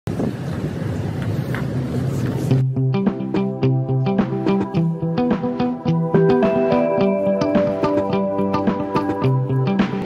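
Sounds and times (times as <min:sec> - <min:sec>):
wind on microphone: 0:00.1 - 0:02.6.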